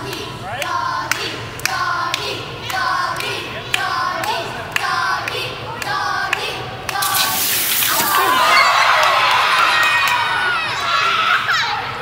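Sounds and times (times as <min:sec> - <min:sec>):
children shouting and cheering: 0:07.8 - 0:12.0.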